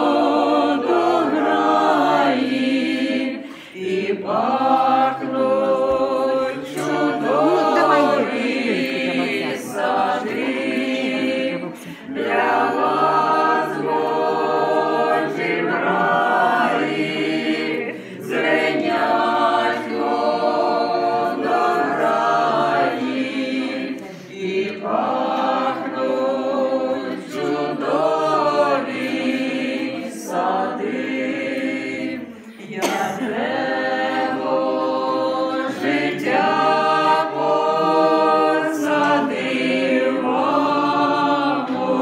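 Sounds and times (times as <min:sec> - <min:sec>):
group singing a hymn: 0:00.0 - 0:42.0.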